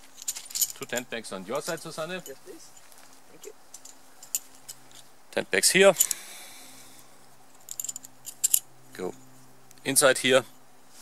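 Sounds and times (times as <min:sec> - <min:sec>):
faint rustle: 0:00.0 - 0:05.2, 0:10.4 - 0:11.0.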